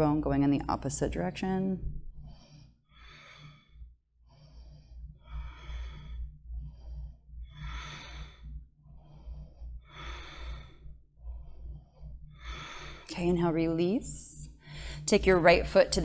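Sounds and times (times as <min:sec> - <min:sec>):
steady low hum: 0:00.0 - 0:16.0
woman breathing: 0:01.8 - 0:15.6.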